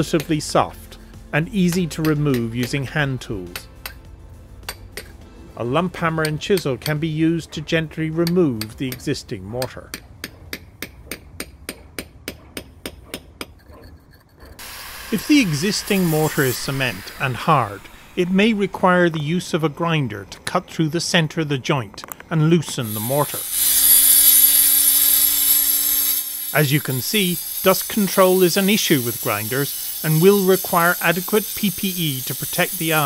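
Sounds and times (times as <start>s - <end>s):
hammer striking steel chisel: 0.0s - 0.4s, 1.7s - 18.5s
angle grinder cutting mortar: 14.5s - 19.6s, 22.7s - 33.0s.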